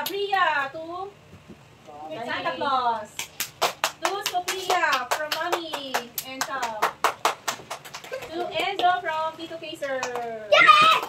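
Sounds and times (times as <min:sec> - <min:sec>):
hands clapping rhythmically: 0:03.1 - 0:09.2, 0:09.8 - 0:11.0
children calling out: 0:10.5 - 0:11.0.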